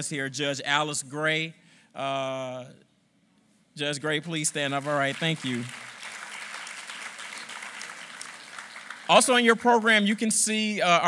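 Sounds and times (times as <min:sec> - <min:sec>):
audience applauding: 0:04.5 - 0:10.2.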